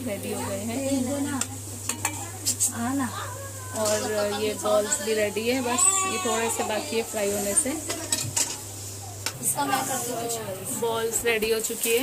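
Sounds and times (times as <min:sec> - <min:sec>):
hot oil sizzling and crackling: 0:00.0 - 0:05.6.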